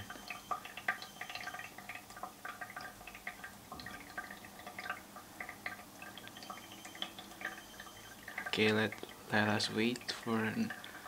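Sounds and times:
water dripping into pitcher: 0.0 - 11.0.

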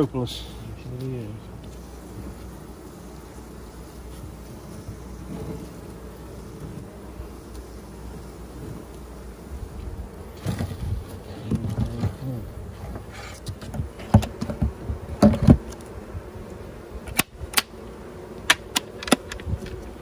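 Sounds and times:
honey bees buzzing: 0.0 - 20.0
wooden hive cover knocks and scrapes: 4.0 - 7.7, 9.8 - 16.2, 18.4 - 20.0.

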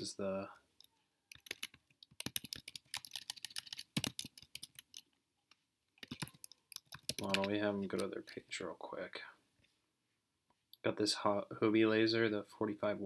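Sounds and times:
computer keyboard typing: 1.3 - 5.1, 6.0 - 8.1.

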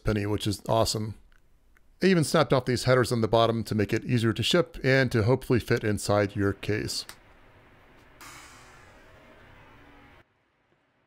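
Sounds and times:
room tone hiss: 0.1 - 11.0.

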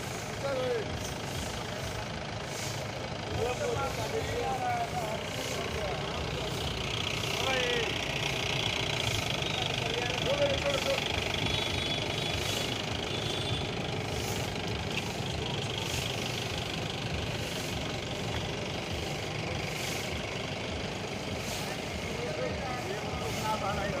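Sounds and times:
brooms swishing on dusty ground: 0.0 - 24.0
faint voices: 0.0 - 24.0.

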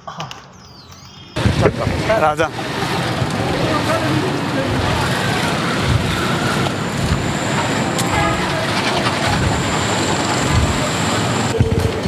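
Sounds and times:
indistinct voices: 1.4 - 12.0
traffic rumble: 1.4 - 12.0
thin high whine: 2.1 - 11.7.

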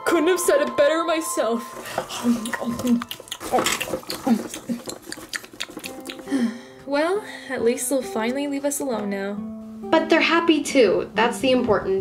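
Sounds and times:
person making eating grunts: 2.1 - 6.5.

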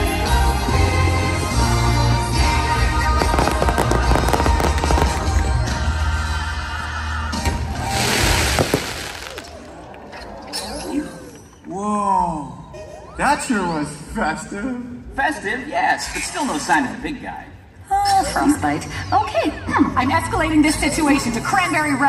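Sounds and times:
bass-heavy show music: 0.0 - 8.5
fireworks crackling and popping: 3.0 - 6.2, 7.7 - 9.8
hissing rush of fireworks: 3.1 - 5.8, 7.7 - 9.8.

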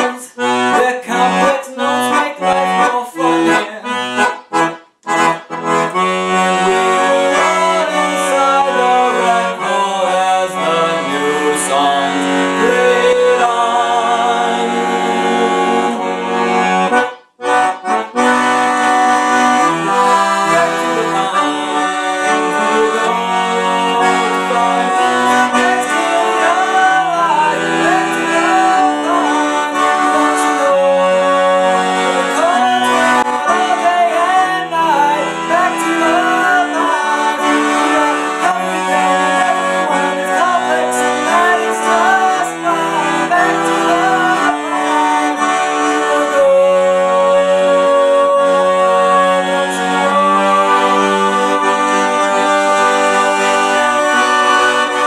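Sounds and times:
accordion playing folk tune: 0.0 - 55.0
man singing wavering melody: 6.6 - 16.1, 19.9 - 45.2.

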